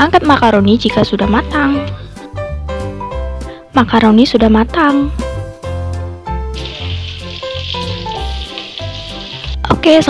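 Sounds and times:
background music with a beat: 5.2s - 10.0s
shallots sizzling in hot oil: 6.5s - 10.0s.

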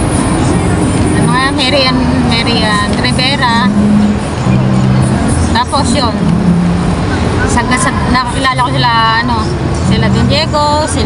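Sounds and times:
city street traffic: 0.0s - 11.0s
passing vehicle engine hum: 0.0s - 11.0s.

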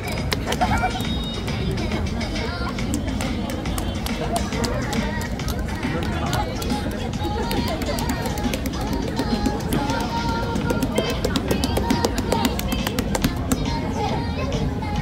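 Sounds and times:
chatter of passers-by: 0.0s - 15.0s
music playing: 0.0s - 15.0s.

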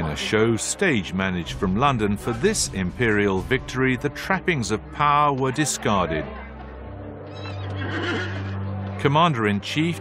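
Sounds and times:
low music drone: 0.0s - 10.0s
horse whinnying: 7.3s - 8.6s.

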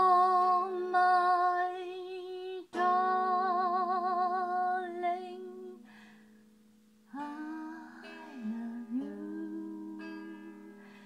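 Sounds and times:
woman humming: 7.1s - 10.8s.

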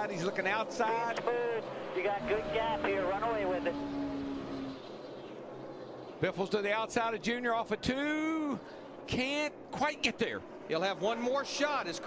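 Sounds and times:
race car engines at full speed: 0.0s - 12.0s.

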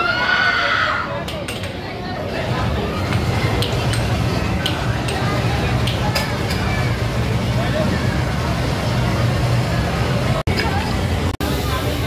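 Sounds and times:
low rumble of arcade machines: 0.0s - 12.0s
people's voices: 0.0s - 12.0s.

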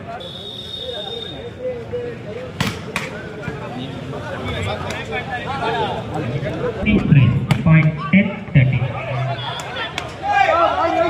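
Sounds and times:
spectator crowd chattering: 0.0s - 11.0s.

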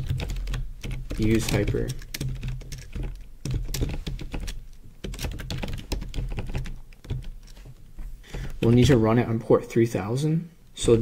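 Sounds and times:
typing on keyboard: 0.0s - 7.7s.

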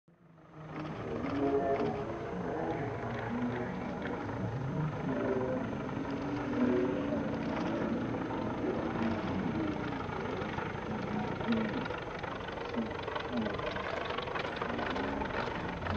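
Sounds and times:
propeller plane engine droning: 0.1s - 15.9s.

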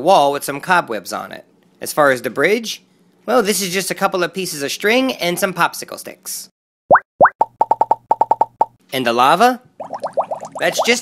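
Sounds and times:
cartoon pops rising in pitch: 6.9s - 8.8s, 9.8s - 10.9s.

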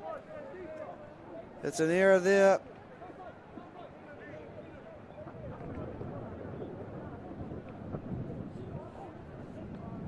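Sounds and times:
wind rumble on microphone: 3.5s - 10.0s.

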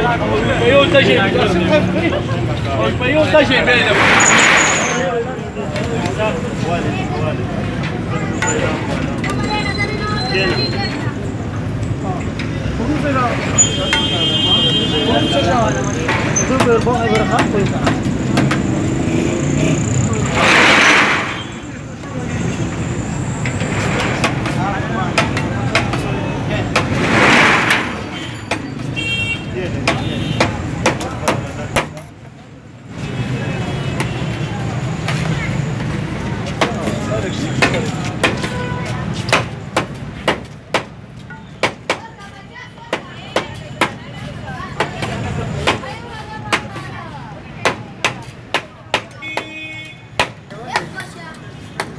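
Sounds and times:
people talking: 0.0s - 20.7s, 24.4s - 27.0s, 33.0s - 39.4s, 41.9s - 49.5s, 50.5s - 51.9s
background chatter: 0.0s - 51.9s
street traffic: 0.0s - 51.9s
vehicle passing close by: 26.8s - 28.1s.

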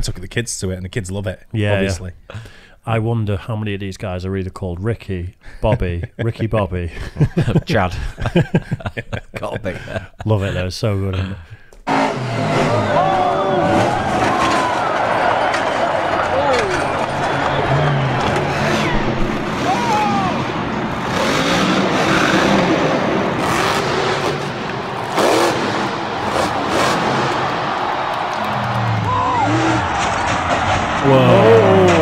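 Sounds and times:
person talking: 0.0s - 2.2s, 2.9s - 8.2s, 9.2s - 11.4s
truck engines revving: 11.8s - 32.0s
arena crowd noise: 11.9s - 32.0s.

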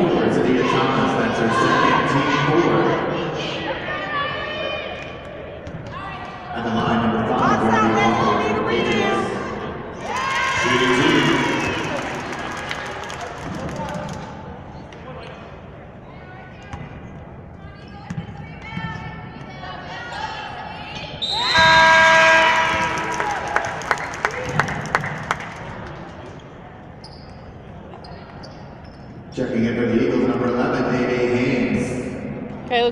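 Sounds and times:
people shouting and cheering: 0.2s - 5.1s, 7.4s - 14.2s, 18.6s - 25.0s.

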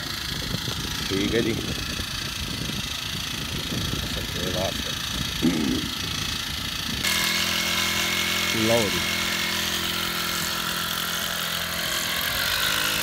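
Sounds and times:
small petrol engine running: 0.0s - 13.0s
short voices: 5.4s - 6.0s.

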